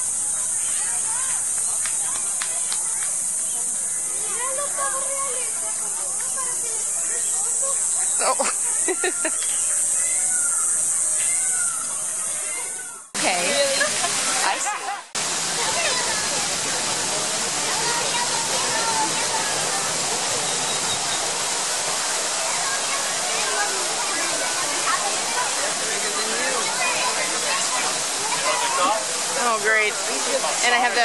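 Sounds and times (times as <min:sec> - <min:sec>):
indistinct voices: 0:00.0 - 0:31.0
rushing water: 0:00.0 - 0:31.0.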